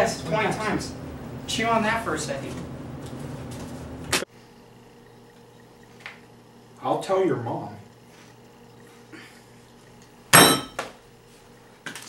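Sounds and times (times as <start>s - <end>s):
low hum: 0.0s - 4.2s.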